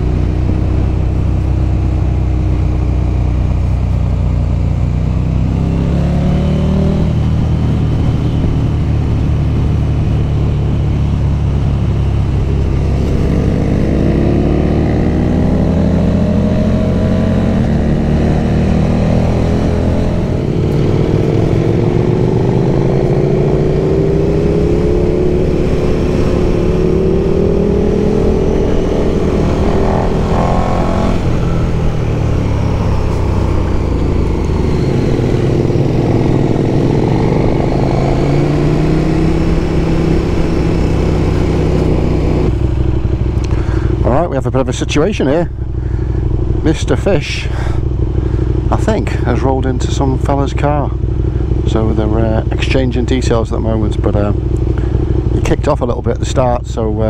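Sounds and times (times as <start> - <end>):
motorcycle engine revving: 0.0 - 57.0
wind and road noise: 0.0 - 57.0.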